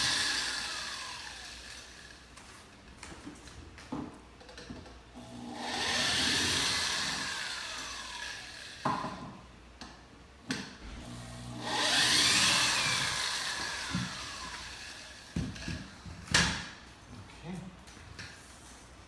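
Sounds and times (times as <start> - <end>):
electric drill whining: 0.0 - 2.2, 5.2 - 8.8, 11.0 - 15.9.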